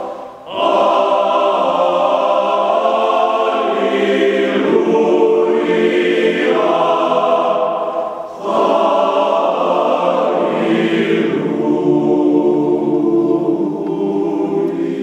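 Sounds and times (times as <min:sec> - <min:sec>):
men's choir singing a cappella: 0:00.0 - 0:15.0.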